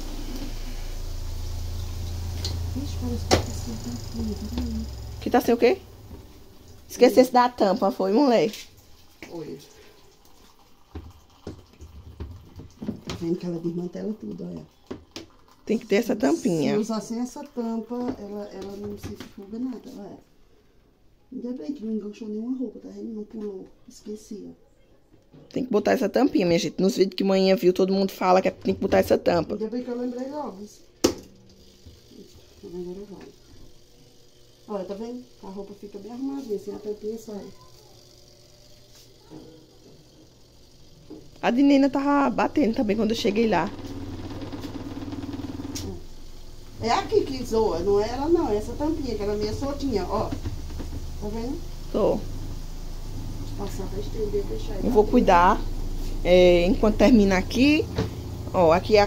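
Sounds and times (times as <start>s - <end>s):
spin dryer humming: 0.0s - 20.2s, 26.3s - 59.0s.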